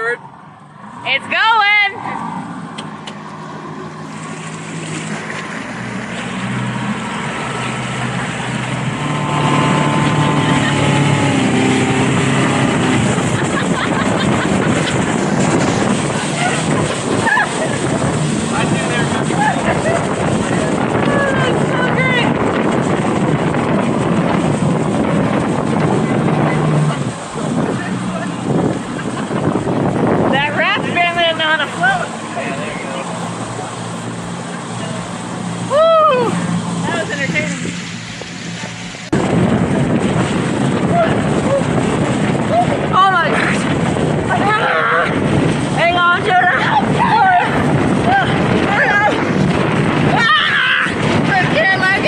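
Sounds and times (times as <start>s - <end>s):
motorboat engine: 0.0s - 52.0s
water rushing: 0.0s - 52.0s
wind on microphone: 0.0s - 52.0s
person yelling: 35.7s - 36.5s, 46.3s - 49.2s, 50.0s - 51.6s.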